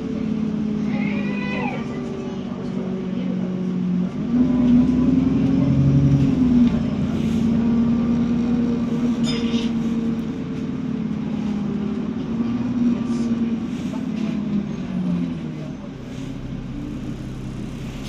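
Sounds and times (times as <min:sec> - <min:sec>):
bus engine accelerating: 0:00.0 - 0:18.0.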